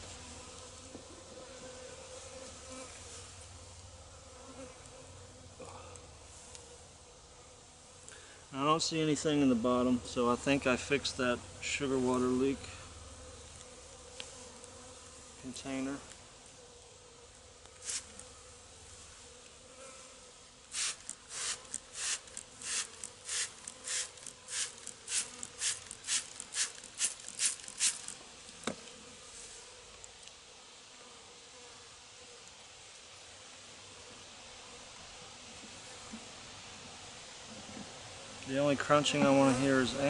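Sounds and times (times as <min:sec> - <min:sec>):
honeybees buzzing: 0:00.0 - 0:30.0, 0:37.5 - 0:40.0
spray bottle squirting: 0:17.8 - 0:18.2, 0:20.7 - 0:28.2.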